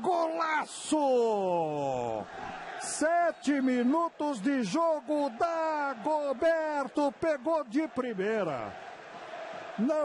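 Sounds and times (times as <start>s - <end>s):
man commentating excitedly: 0.0s - 8.7s.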